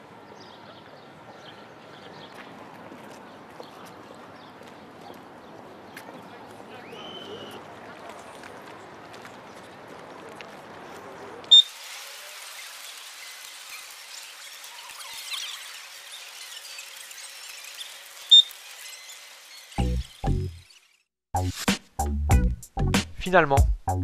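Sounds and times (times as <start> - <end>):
steady hiss: 11.6 - 20.5
bite alarm beeps: 18.3 - 18.6
thudding music beat: 21.3 - 24.0.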